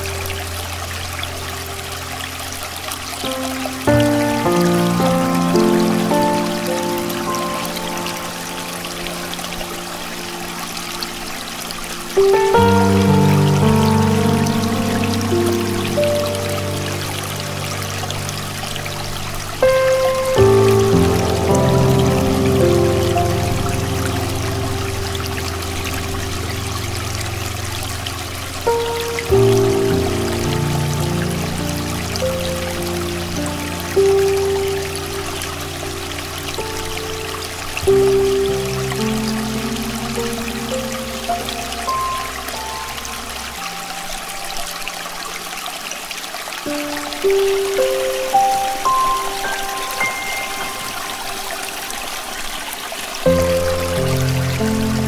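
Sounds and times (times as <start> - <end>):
soft solo piano chords: 0.0 - 55.0
stream water flowing: 0.0 - 55.0.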